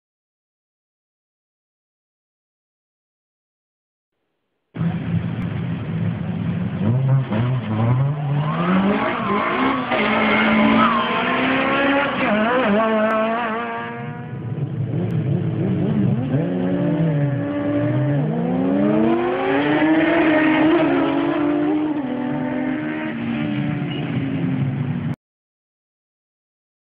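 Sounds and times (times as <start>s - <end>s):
car engines revving and accelerating: 4.8s - 25.2s.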